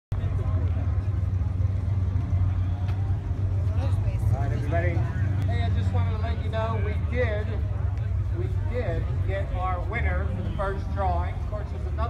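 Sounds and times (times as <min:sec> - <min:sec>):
low engine rumble: 0:00.1 - 0:12.0
man talking: 0:04.3 - 0:12.0.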